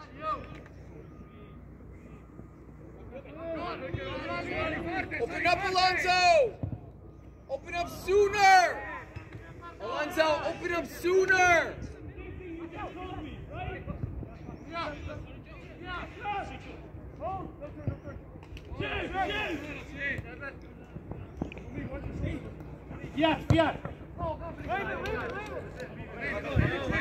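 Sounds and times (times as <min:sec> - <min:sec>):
players shouting: 0:00.0 - 0:06.7, 0:07.5 - 0:27.0.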